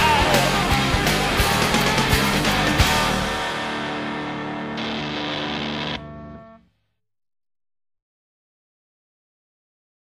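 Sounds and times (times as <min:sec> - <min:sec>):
punk band playing: 0:00.0 - 0:06.0
distorted guitar chord ringing: 0:00.0 - 0:06.7.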